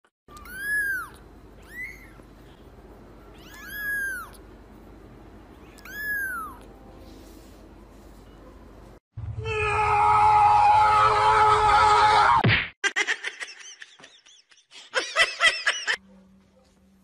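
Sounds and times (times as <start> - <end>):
kitten mewing: 3.4 - 4.4, 5.7 - 6.7.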